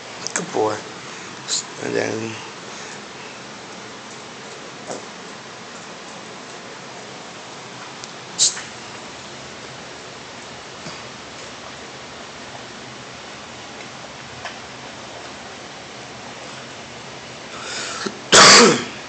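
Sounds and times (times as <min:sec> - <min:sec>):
low background hiss: 0:00.0 - 0:19.0
loud short cough: 0:18.3 - 0:18.9.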